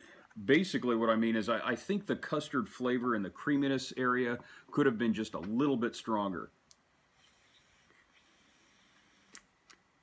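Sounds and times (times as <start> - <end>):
e-cigarette drag hiss: 7.1 - 9.5.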